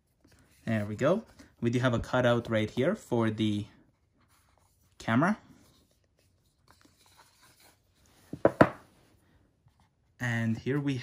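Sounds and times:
box lid knocking on table: 8.4s - 8.8s.

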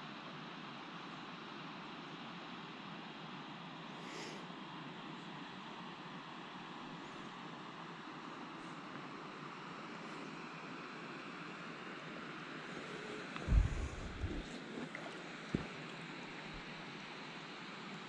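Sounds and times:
light wind: 12.4s - 16.8s
water swishing: 13.4s - 15.8s
low thump: 13.5s - 14.4s.

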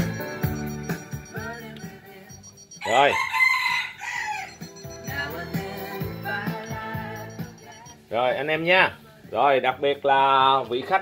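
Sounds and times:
faint music from hi-fi: 0.0s - 11.0s
rooster crowing: 2.8s - 4.8s.

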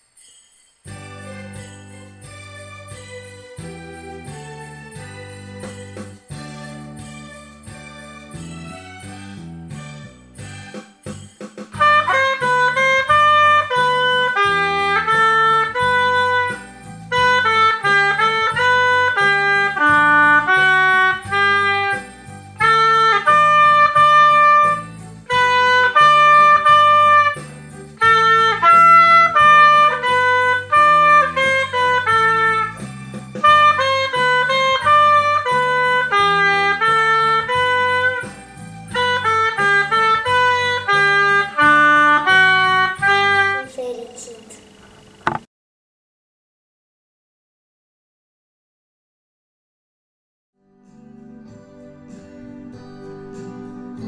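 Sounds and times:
oboe melody: 11.8s - 43.6s.

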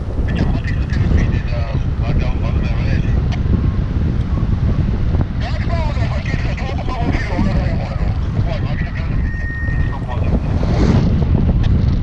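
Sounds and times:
wind buffeting microphone: 0.0s - 12.0s
voices: 0.3s - 10.7s.

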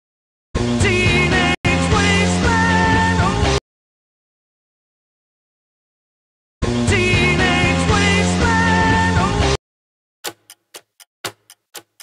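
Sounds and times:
clock ticking: 10.2s - 12.0s.

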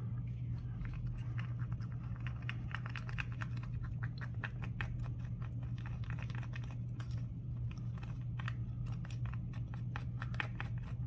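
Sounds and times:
stick stirring in plastic cup: 0.0s - 11.0s.

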